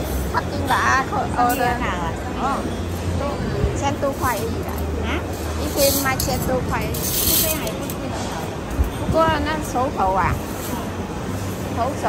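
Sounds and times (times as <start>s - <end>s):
people talking: 0.0s - 11.0s, 11.7s - 12.0s
food court chatter and hum: 0.0s - 12.0s.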